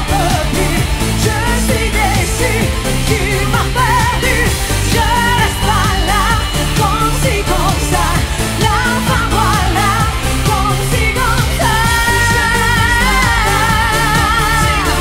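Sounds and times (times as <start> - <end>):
woman singing with vibrato: 0.0 - 15.0.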